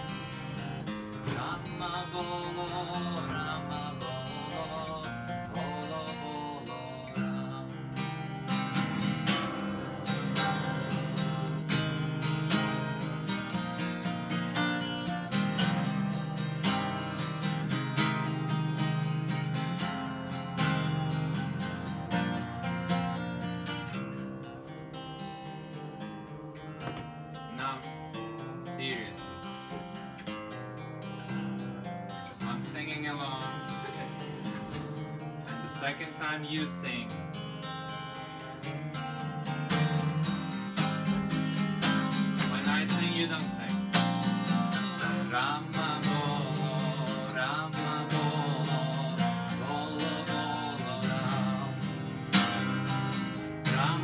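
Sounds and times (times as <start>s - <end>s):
acoustic guitar strumming: 0.0s - 54.0s.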